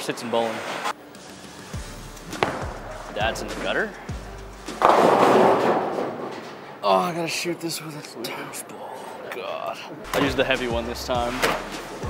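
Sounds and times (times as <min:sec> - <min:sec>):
bowling ball crash and rattle: 0:02.4 - 0:03.0, 0:04.7 - 0:06.8.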